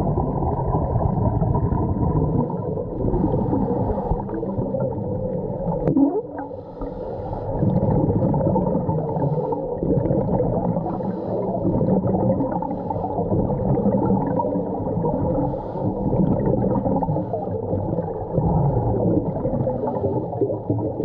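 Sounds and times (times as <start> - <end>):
muffled underwater rumble: 0.0 - 21.0
scuba exhaust bubbles gurgling: 0.0 - 21.0.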